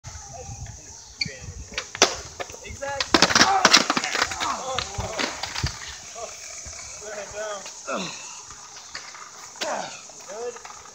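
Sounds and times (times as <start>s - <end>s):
skateboard rolling on concrete: 0.1s - 10.9s
skateboard clattering on concrete: 1.7s - 6.8s, 8.6s - 10.9s.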